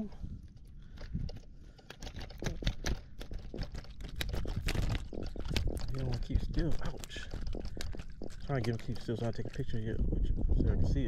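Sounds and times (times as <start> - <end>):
fish flapping and tapping: 0.5 - 10.4.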